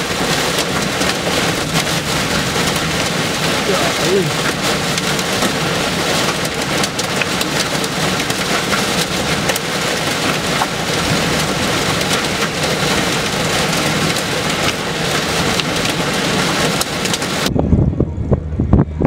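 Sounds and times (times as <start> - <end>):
raindrops ticking on windshield: 0.0 - 17.5
heavy rain on a vehicle: 0.0 - 17.6.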